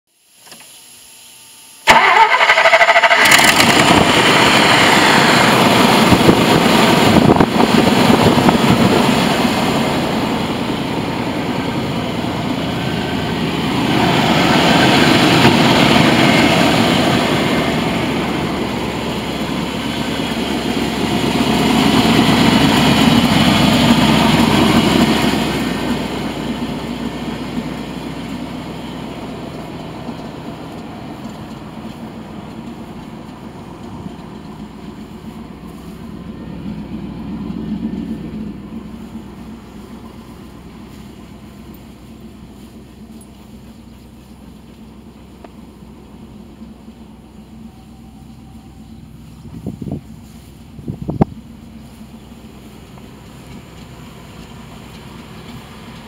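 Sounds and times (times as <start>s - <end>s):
truck starter cranking: 1.9s - 7.3s
truck engine running loudly: 1.9s - 56.0s.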